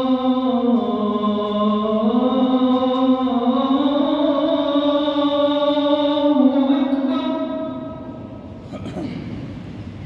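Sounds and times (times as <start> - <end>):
echo of chanting voice: 0.0 - 9.4.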